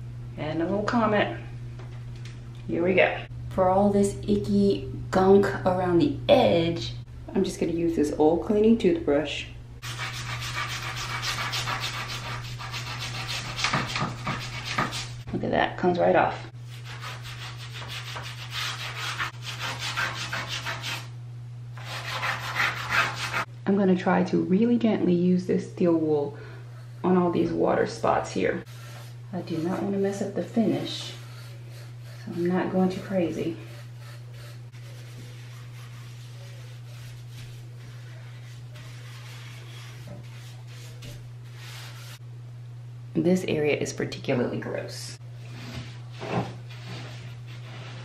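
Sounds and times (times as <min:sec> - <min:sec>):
steady low hum: 0:00.0 - 0:48.0
toothbrush scrubbing bathtub edge: 0:09.8 - 0:15.3, 0:16.7 - 0:21.1, 0:21.8 - 0:23.5, 0:28.6 - 0:42.2.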